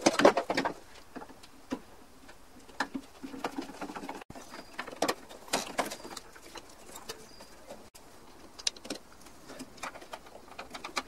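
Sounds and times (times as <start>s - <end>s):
bird calling: 4.3s - 7.9s.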